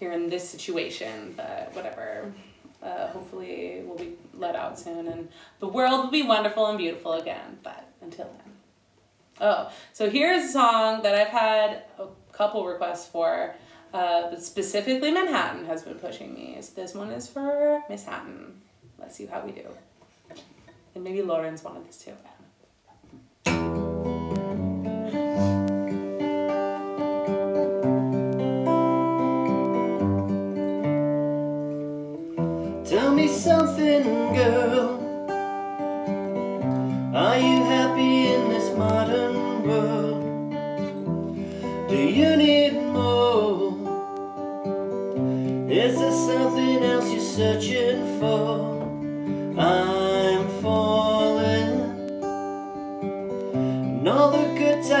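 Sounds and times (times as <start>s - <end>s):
acoustic guitar chords: 23.4s - 55.0s
man singing: 32.8s - 35.1s, 37.1s - 40.4s, 41.9s - 44.0s, 45.7s - 49.0s, 49.6s - 52.1s, 53.9s - 55.0s.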